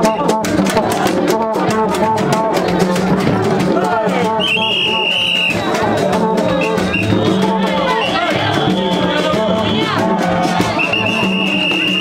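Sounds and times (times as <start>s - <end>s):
drums and shaken percussion: 0.0s - 12.0s
long high whistle note: 10.8s - 12.0s.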